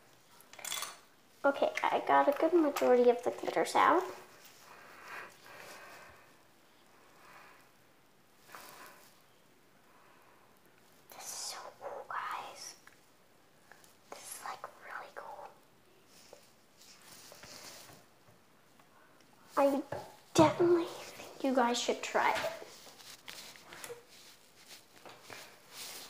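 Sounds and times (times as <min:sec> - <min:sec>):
person whispering: 0:11.1 - 0:12.8, 0:14.0 - 0:15.6, 0:19.5 - 0:22.8.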